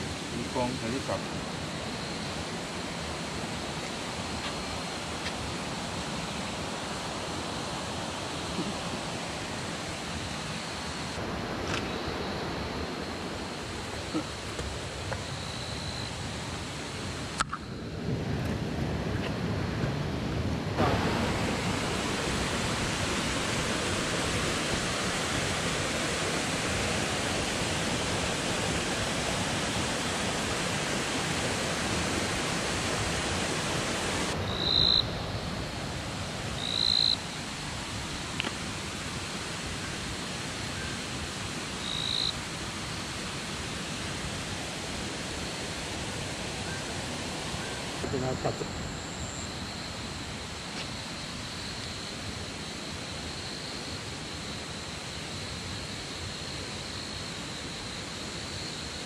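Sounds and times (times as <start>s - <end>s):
creek water rushing: 0.0s - 59.0s.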